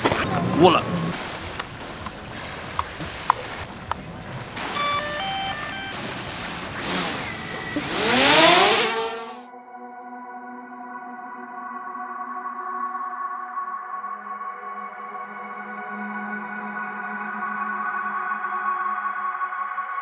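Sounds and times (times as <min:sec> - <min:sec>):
ambient electronic music: 0:00.0 - 0:08.7
drone propellers whining: 0:00.0 - 0:09.5
electronic beeps: 0:04.6 - 0:08.4.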